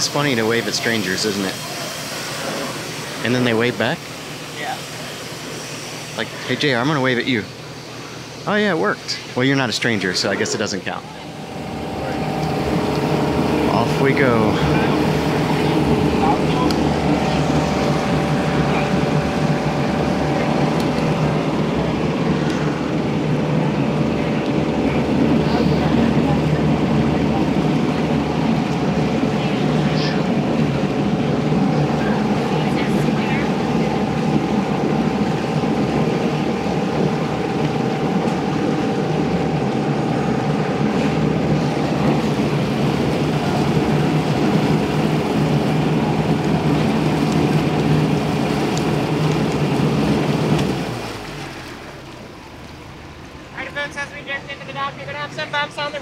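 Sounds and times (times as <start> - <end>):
boat engine humming: 0.0 - 56.0
water churning: 0.0 - 56.0.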